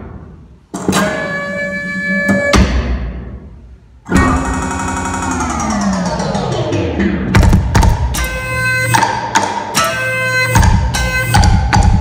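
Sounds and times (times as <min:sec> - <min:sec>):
percussion: 0:07.3 - 0:12.0.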